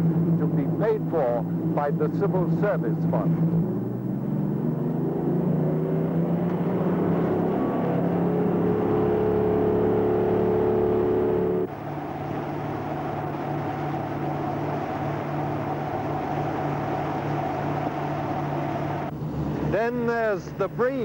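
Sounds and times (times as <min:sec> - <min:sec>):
boat diesel engines droning: 0:00.0 - 0:21.0.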